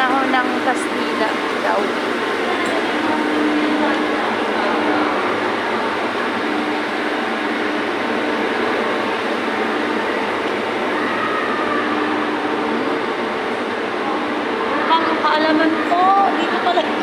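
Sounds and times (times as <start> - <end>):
steady rushing noise: 0.0 - 17.0.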